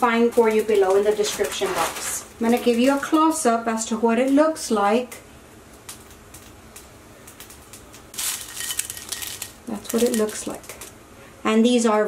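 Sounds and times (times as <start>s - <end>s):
dried chiles rustling: 0.0s - 3.4s, 5.9s - 11.0s.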